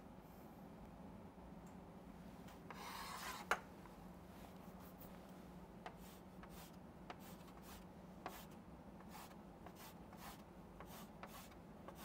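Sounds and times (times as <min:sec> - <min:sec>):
chalk scraping on chalkboard: 0:02.7 - 0:03.5, 0:05.9 - 0:12.0
chalk tap: 0:05.8 - 0:12.0.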